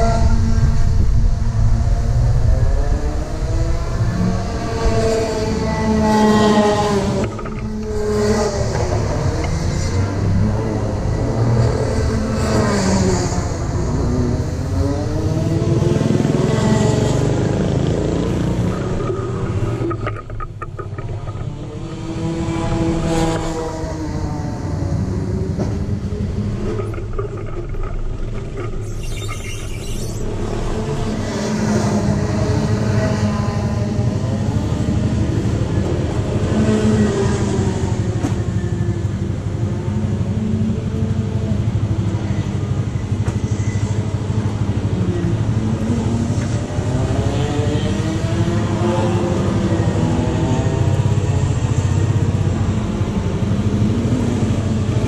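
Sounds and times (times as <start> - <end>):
kart engines racing: 0.0 - 55.0.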